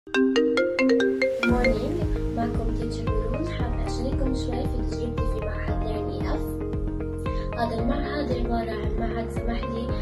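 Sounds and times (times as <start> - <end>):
phone ringtone melody: 0.1 - 2.4
background music with deep beat: 1.2 - 10.0.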